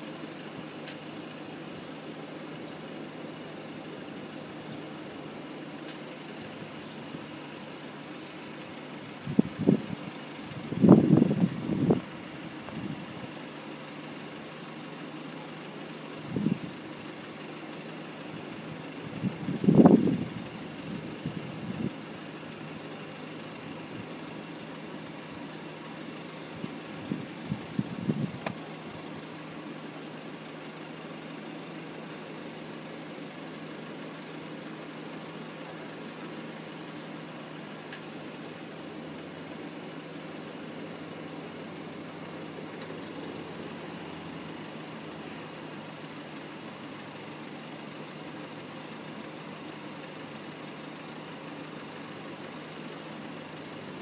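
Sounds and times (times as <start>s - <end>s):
cars idling: 0.0s - 54.0s.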